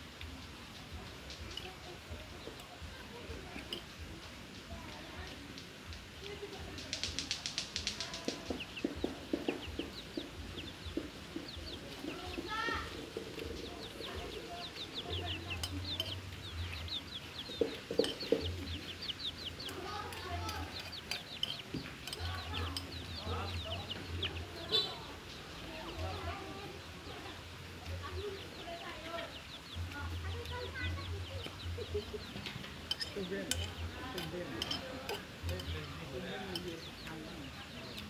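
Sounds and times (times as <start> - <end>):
chickens clucking: 0.0 - 38.0
chicks peeping: 0.0 - 38.0
small birds chirping: 0.0 - 38.0.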